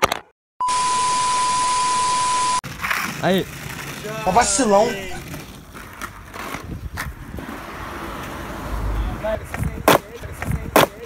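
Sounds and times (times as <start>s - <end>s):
skateboard tail scraping on asphalt: 2.6s - 10.3s.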